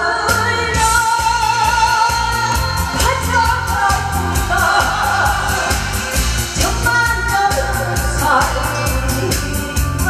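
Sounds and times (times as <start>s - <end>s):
person singing: 0.0s - 10.0s
backing track with drums and bass: 0.2s - 10.0s.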